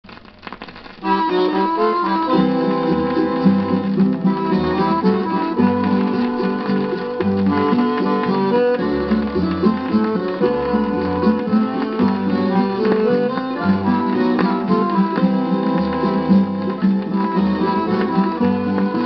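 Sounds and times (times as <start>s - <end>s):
plucked acoustic guitars: 0.3s - 19.0s
accordion notes: 1.0s - 19.0s.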